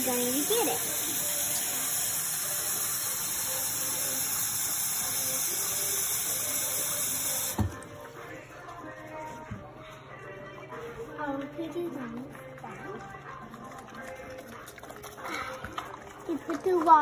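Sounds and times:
tap water running into bowl: 0:00.0 - 0:07.9, 0:12.6 - 0:17.0.

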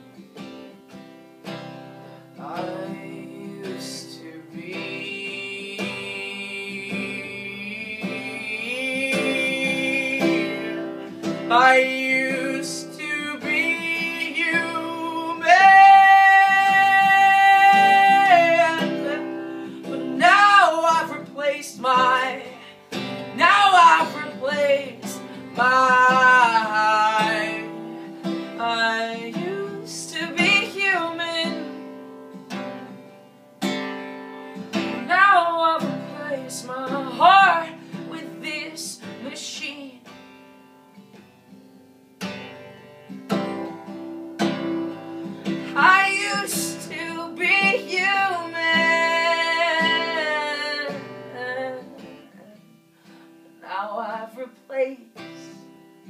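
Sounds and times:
acoustic guitar strumming: 0:00.0 - 0:56.0
man singing long notes: 0:02.4 - 0:22.7.

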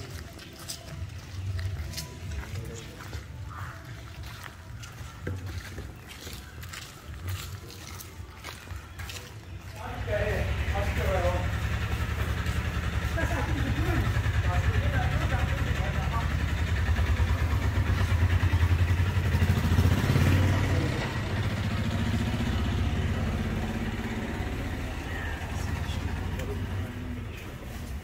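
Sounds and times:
faint voices: 0:00.0 - 0:28.0.

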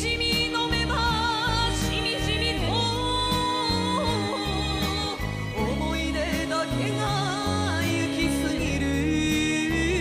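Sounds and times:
band accompaniment: 0:00.0 - 0:10.0
woman singing a ballad: 0:00.0 - 0:10.0.

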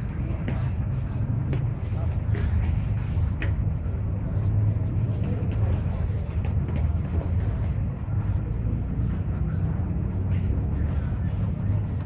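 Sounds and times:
faint background voices: 0:00.0 - 0:12.0
steady low rumble: 0:00.0 - 0:12.0.

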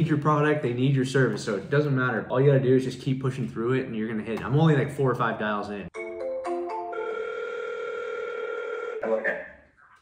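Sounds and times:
telephone ringback tone: 0:06.8 - 0:09.0.

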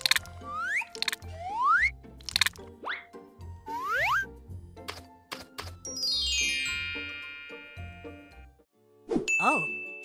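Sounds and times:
light background music: 0:00.0 - 0:10.0
descending cartoon bell chime: 0:06.0 - 0:08.2.

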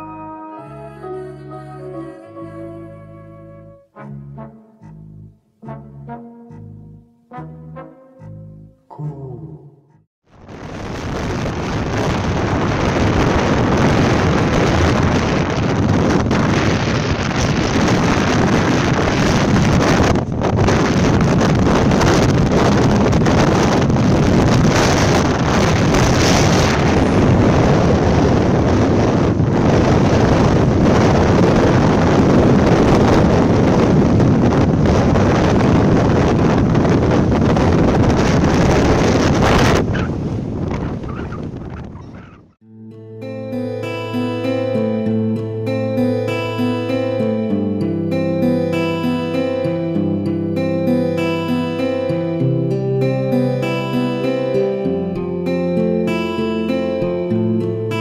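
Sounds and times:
wind buffeting microphone: 0:10.4 - 0:42.6.

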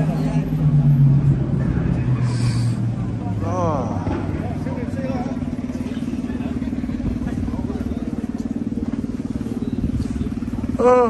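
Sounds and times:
faint chatter: 0:00.0 - 0:11.0
scooter engine idling: 0:00.0 - 0:11.0.

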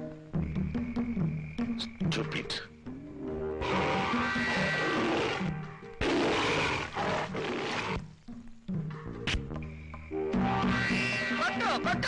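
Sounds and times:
film music: 0:00.0 - 0:12.0
tiger roaring: 0:03.6 - 0:08.0.

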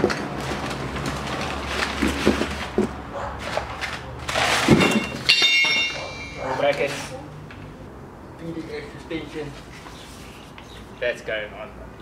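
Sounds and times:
cardboard and paper rustling: 0:00.0 - 0:05.2.

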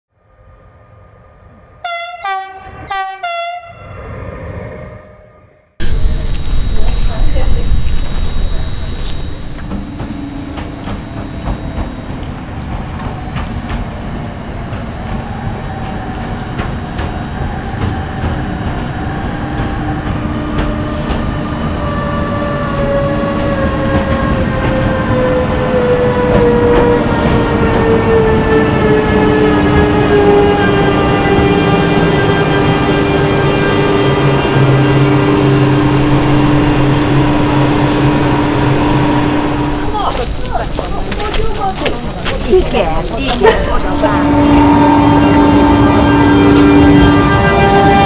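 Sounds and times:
electric locomotive whine: 0:00.2 - 0:48.0
passing train rumble: 0:00.2 - 0:48.0
train horn blasts: 0:01.8 - 0:03.9, 0:26.3 - 0:39.9, 0:43.7 - 0:48.0
wheels clicking on rails: 0:05.8 - 0:22.2, 0:39.8 - 0:44.7
rushing outdoor noise: 0:05.8 - 0:27.7, 0:29.5 - 0:48.0.

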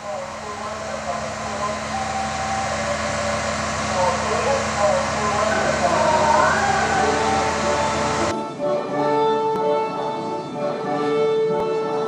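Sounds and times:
low hum: 0:00.0 - 0:08.3
steady rushing noise: 0:00.0 - 0:08.5.

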